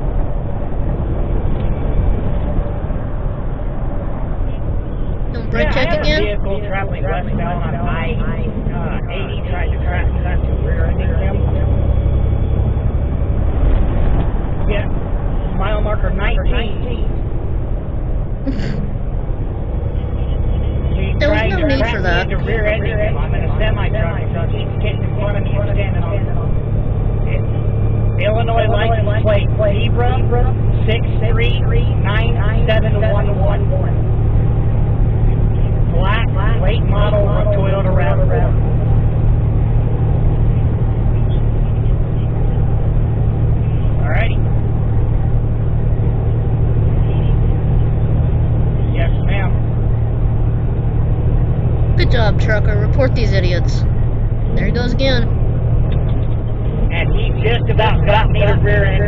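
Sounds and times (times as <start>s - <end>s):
truck engine and road rumble: 0.0s - 59.0s
indistinct talking: 5.4s - 11.6s, 18.5s - 19.0s, 19.9s - 26.6s, 52.0s - 55.4s.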